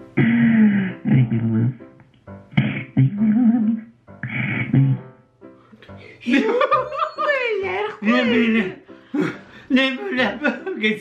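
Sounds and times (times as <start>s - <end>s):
music with person singing: 7.7s - 9.7s.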